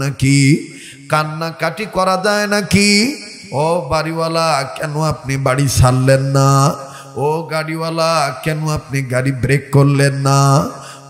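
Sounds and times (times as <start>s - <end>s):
man chanting a sermon: 0.0s - 11.0s.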